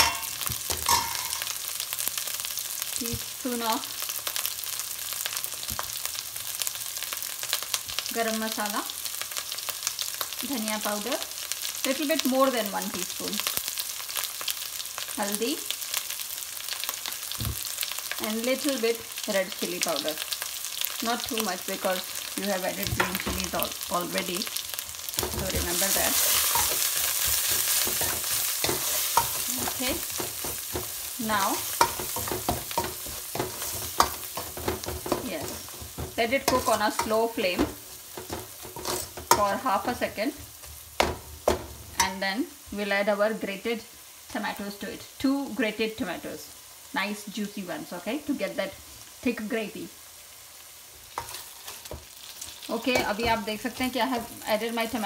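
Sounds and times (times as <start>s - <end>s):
metal spoon scraping a pan: 0.0s - 1.6s, 25.2s - 42.1s, 51.1s - 53.4s
onions frying in oil: 0.0s - 55.0s.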